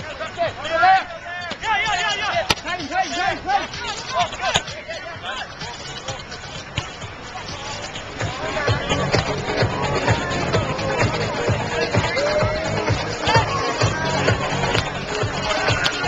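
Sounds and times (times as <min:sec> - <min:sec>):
people shouting and calling out: 0:00.0 - 0:16.0.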